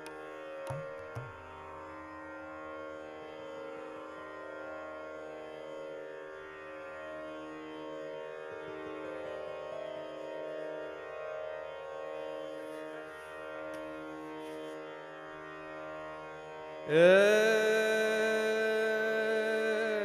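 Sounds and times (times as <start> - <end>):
harmonium: 0.0 - 20.0
plucked sitar strings: 0.0 - 20.0.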